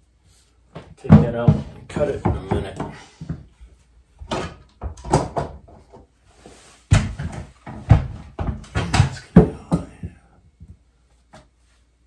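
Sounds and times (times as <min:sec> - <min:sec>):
parts knocking against wooden wall: 0:00.8 - 0:03.5, 0:04.2 - 0:06.0, 0:06.9 - 0:10.2.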